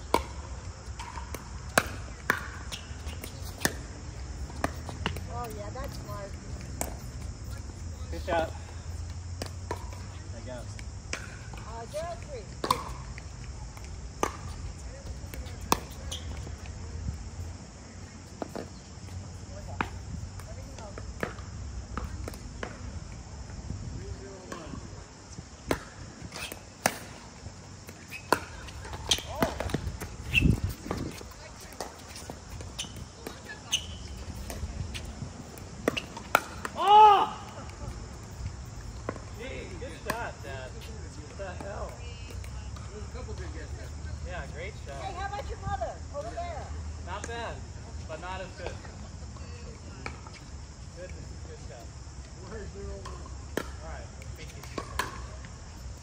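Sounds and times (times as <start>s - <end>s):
ball bouncing on court: 0.1s - 7.1s, 10.6s - 13.1s, 13.8s - 16.5s, 25.7s - 27.1s, 27.9s - 37.2s, 54.5s - 55.4s
person shouting: 36.8s - 37.6s.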